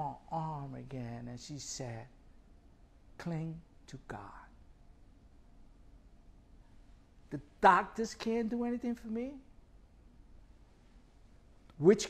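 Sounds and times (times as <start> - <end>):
man speaking softly: 0.0 - 2.2, 3.2 - 4.6, 7.3 - 9.5, 11.8 - 12.0.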